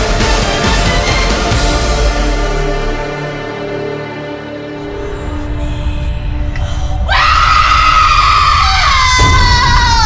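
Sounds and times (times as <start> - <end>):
woman screaming: 7.1 - 10.0.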